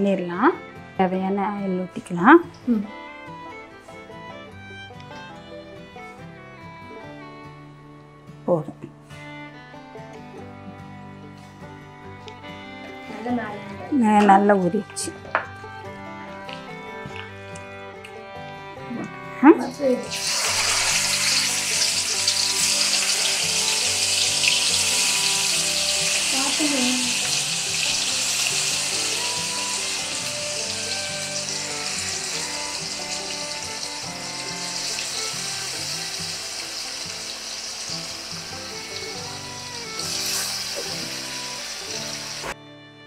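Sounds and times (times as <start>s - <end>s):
chicken sizzling in hot oil: 20.0s - 42.6s.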